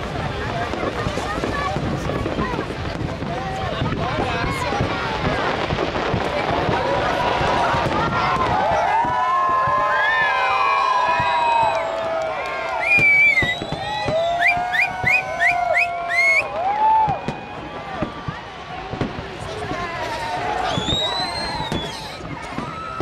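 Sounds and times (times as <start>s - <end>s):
crowd shouting and cheering: 0.0s - 23.0s
fireworks bursting and crackling: 0.0s - 23.0s
short rising firework whistles: 8.2s - 12.1s, 12.7s - 18.4s, 19.8s - 23.0s.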